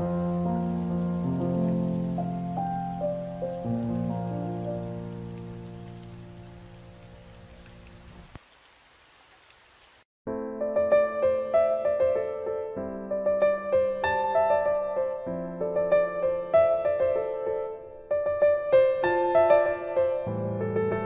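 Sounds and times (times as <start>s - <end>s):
solo piano chords: 0.0s - 8.3s, 10.3s - 21.0s.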